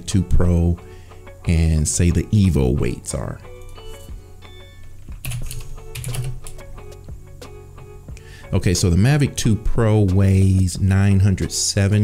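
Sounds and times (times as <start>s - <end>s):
background music: 0.0s - 12.0s
computer keyboard typing: 5.1s - 6.7s.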